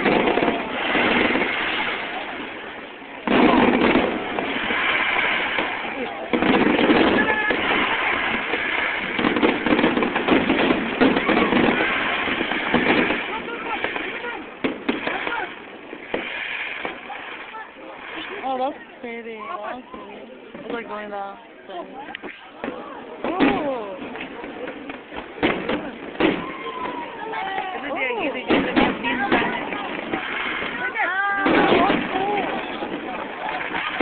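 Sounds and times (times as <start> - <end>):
sharp firework cracks: 0.0 - 18.4, 22.1 - 34.0
crowd voices: 0.0 - 34.0
fireworks bursting: 0.0 - 34.0.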